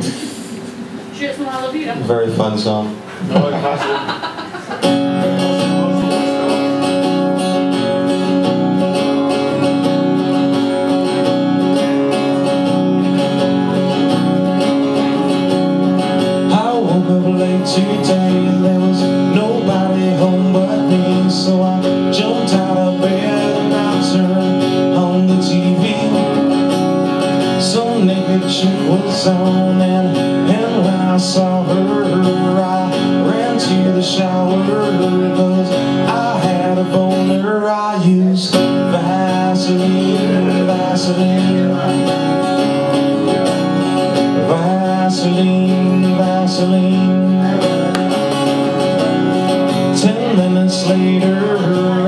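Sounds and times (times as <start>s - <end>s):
acoustic guitar strumming: 0.0s - 52.0s
short laugh: 3.2s - 5.0s.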